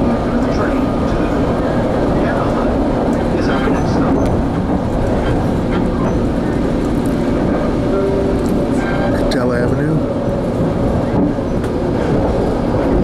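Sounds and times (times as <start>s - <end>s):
train rumbling along rails: 0.0s - 13.0s.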